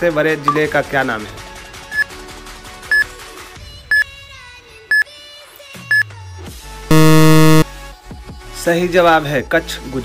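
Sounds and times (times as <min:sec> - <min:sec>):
short high beeps: 0:06.9 - 0:07.6.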